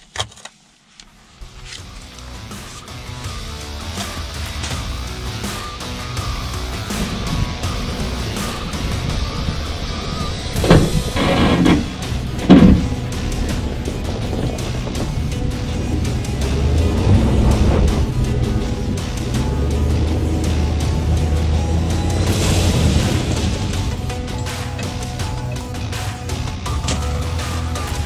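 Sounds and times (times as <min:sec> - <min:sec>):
truck engine rumbling: 0:01.2 - 0:28.0
background music: 0:01.3 - 0:28.0
truck door shutting: 0:07.0 - 0:18.2, 0:26.7 - 0:27.4
loud knocks: 0:10.6 - 0:13.3.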